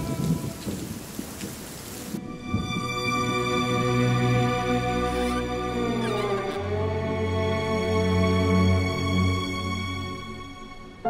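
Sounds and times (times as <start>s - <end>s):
low rumble of thunder: 0.0s - 3.2s
steady rain: 0.0s - 11.0s.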